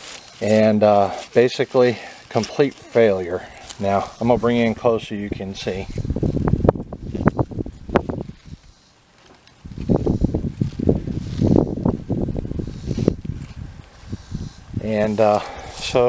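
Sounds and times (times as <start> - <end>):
dry corn husks rustling: 0.0 - 16.0.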